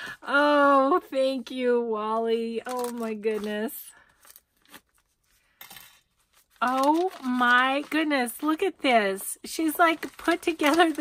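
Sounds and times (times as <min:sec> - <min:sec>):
paper rustling: 0:02.7 - 0:11.0.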